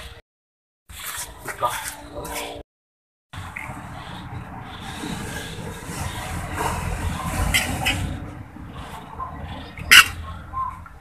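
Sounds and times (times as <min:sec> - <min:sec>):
metal utensils scraping a wok: 0:03.8 - 0:10.1.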